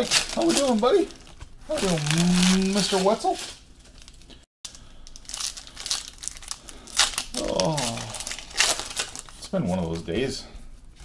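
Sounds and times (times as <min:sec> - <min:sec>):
foil wrapper crinkling: 0:00.0 - 0:10.1.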